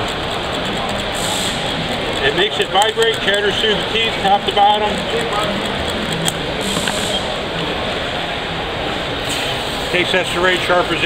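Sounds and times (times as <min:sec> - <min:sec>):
crowded hall background noise: 0:00.0 - 0:11.0.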